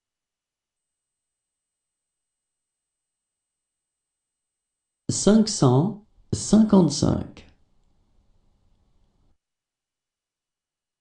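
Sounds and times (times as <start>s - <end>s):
person speaking: 5.1s - 7.5s.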